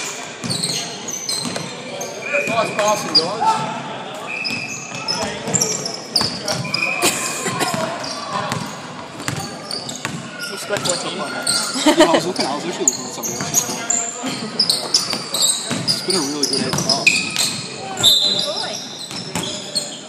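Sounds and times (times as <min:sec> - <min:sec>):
sneakers squeaking: 0:00.0 - 0:20.0.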